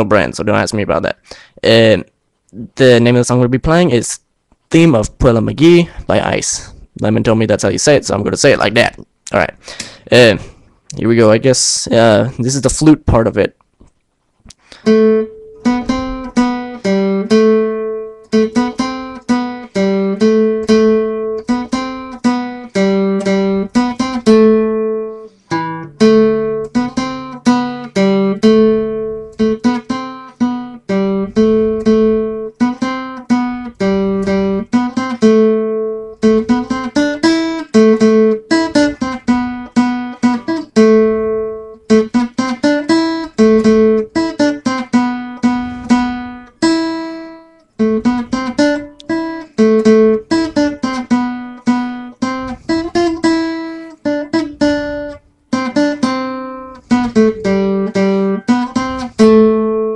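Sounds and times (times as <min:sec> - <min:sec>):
person breathing: 0:01.2 - 0:01.6, 0:05.8 - 0:07.0, 0:09.6 - 0:10.9, 0:14.5 - 0:15.0, 0:25.1 - 0:25.6, 0:45.4 - 0:46.5
acoustic guitar melody: 0:14.6 - 0:59.9.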